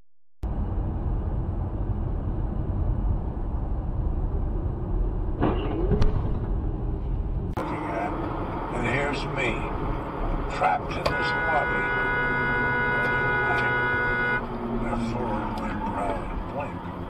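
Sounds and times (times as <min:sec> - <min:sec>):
car engine and road noise: 0:00.4 - 0:17.0
voices in car: 0:07.6 - 0:17.0.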